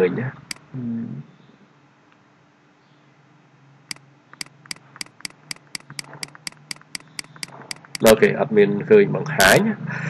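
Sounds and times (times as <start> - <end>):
mouse button clicks: 4.4 - 8.1.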